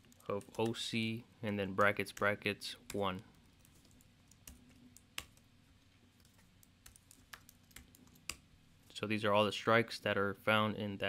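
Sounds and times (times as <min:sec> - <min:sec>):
computer keyboard keystrokes: 0:02.9 - 0:05.4, 0:06.2 - 0:08.4.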